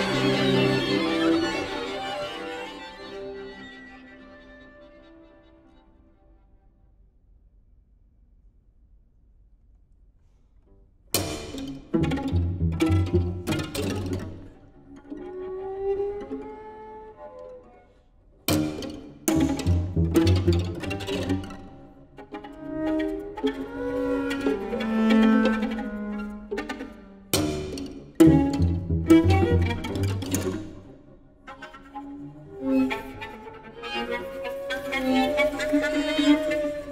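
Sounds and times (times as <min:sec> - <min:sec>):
string quartet playing: 0:00.0 - 0:05.9, 0:11.2 - 0:36.9.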